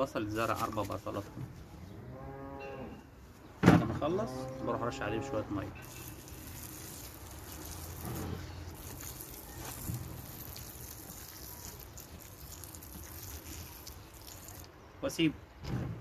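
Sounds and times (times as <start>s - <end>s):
spray bottle hissing water: 5.8s - 14.7s.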